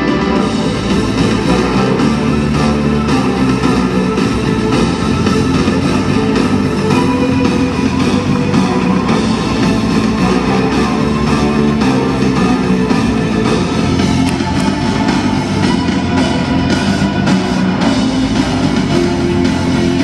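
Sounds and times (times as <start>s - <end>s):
loud rock music: 0.0s - 20.0s.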